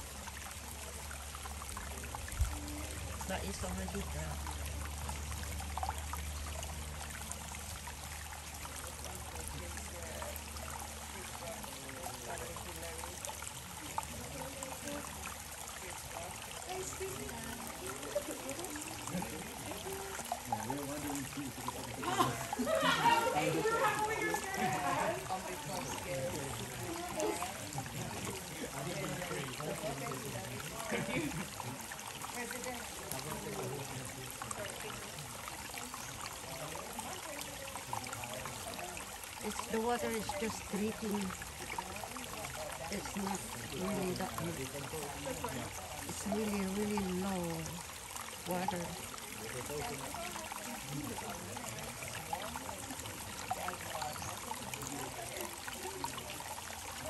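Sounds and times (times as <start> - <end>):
water trickling and dripping: 0.0 - 57.0
people's voices: 8.8 - 57.0.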